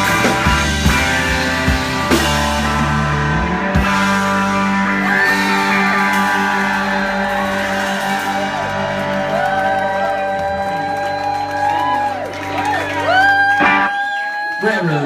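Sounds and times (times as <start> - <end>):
rock band guitar chord ringing: 0.0 - 9.3
audience shouting and whooping: 4.6 - 15.0.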